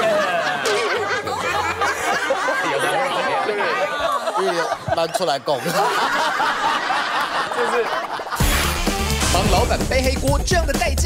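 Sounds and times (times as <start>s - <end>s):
people chattering: 0.0s - 5.9s.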